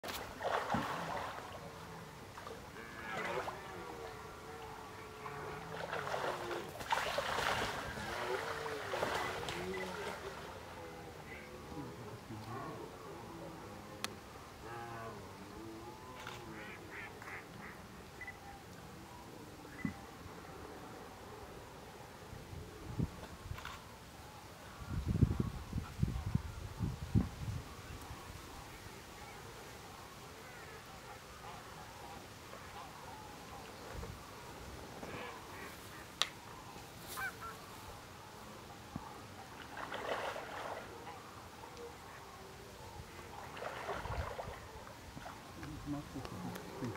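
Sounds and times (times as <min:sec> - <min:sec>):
distant waterfowl calling: 0:00.4 - 0:20.2, 0:27.8 - 0:46.9
distant wild animal calls: 0:34.9 - 0:45.4.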